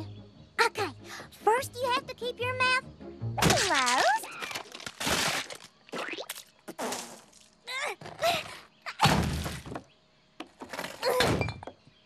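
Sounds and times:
mud slab cracking: 3.4s - 7.5s.

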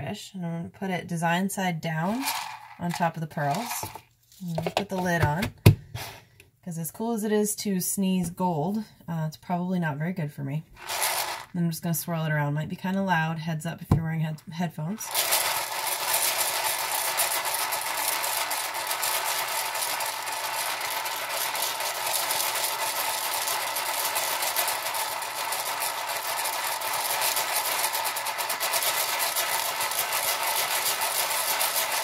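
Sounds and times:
beads rattling in plastic container: 2.0s - 5.4s, 10.8s - 11.6s, 15.0s - 32.0s.

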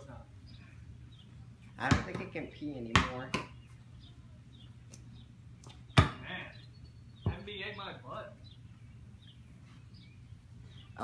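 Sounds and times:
faint bird chirps: 3.5s - 11.0s.

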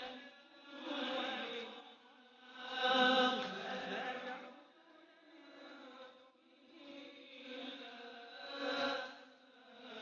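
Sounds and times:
man chanting recitation: 0.0s - 10.0s.

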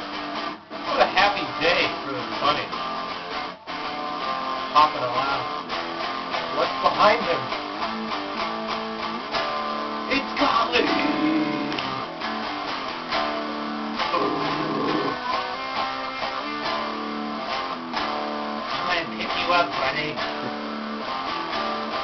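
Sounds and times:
guitar strumming chords: 0.0s - 22.0s
wavering sound: 10.8s - 12.0s.

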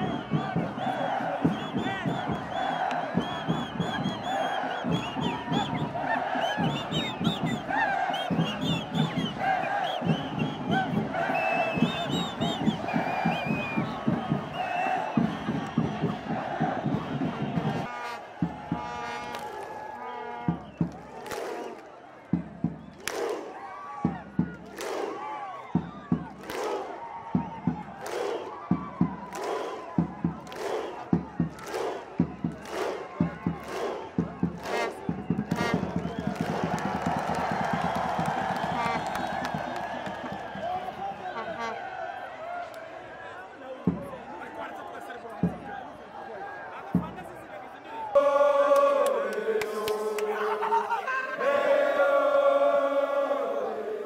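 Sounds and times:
crowd chanting: 0.0s - 27.0s, 27.6s - 54.0s
crowd clapping in unison: 0.0s - 41.7s, 48.1s - 51.6s
crowd cheering: 0.0s - 54.0s.

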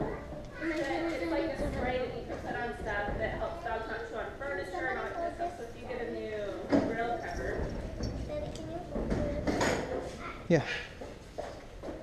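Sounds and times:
quiet voices talking: 0.0s - 11.0s.

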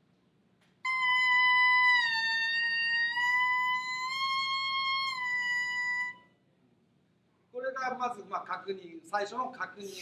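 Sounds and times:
clarinet mouthpiece sustained tone: 0.9s - 6.4s.

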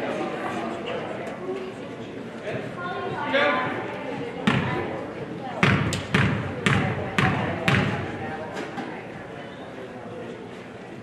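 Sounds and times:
basketball bouncing on hardwood floor: 4.5s - 4.8s, 5.6s - 8.0s.

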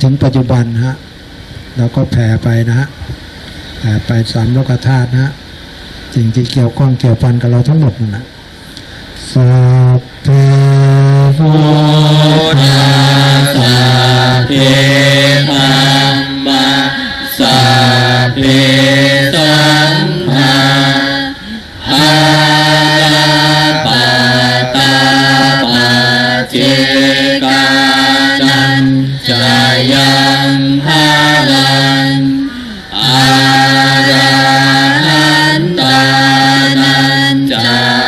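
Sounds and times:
monotone chanting: 9.2s - 38.0s.

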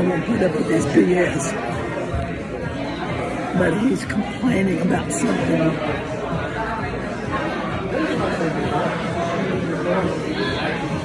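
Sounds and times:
restaurant diners chatter: 0.0s - 11.0s.

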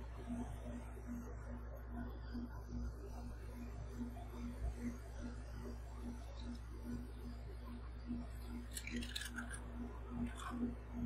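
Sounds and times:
steady low hum: 0.0s - 11.0s
chips crackling in a hand: 8.7s - 10.6s.

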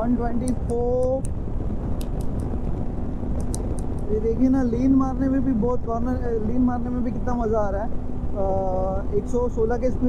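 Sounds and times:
motorcycle engine and road noise: 0.0s - 10.0s
wind rushing over microphone: 0.0s - 10.0s.

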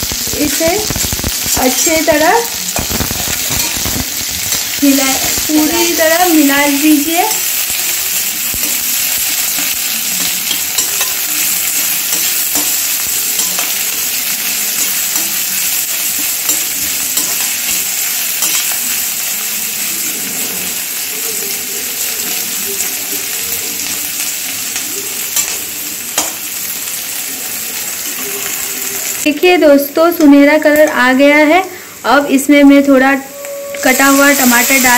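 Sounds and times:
onions sizzling in hot oil: 0.0s - 34.9s
spatula scraping metal pan: 33.2s - 34.9s.

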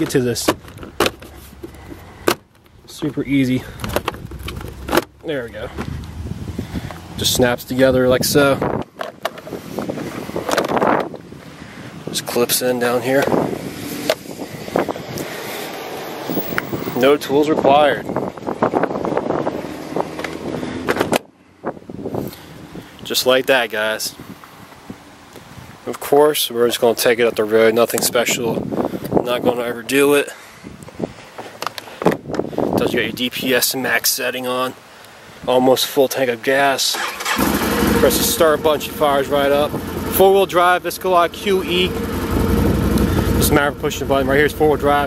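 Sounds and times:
plastic panels clicking and rattling: 0.0s - 6.0s.

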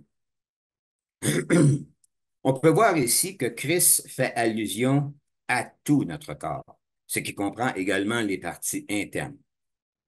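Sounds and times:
man clearing his throat: 1.2s - 2.0s.

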